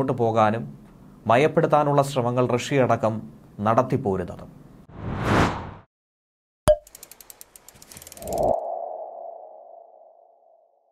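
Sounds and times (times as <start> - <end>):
whoosh: 4.9 - 5.9
quick run of ticks: 6.8 - 8.6
ringing sonar-like tone: 8.2 - 10.9.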